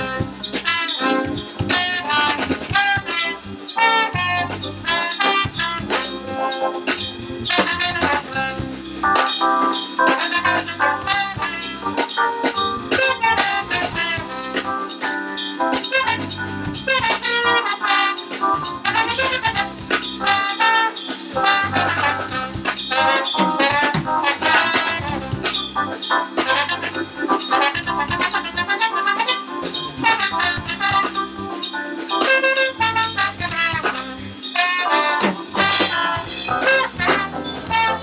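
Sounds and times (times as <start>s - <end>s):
jazz band playing: 0.0s - 38.0s
trombone melody: 0.0s - 38.0s.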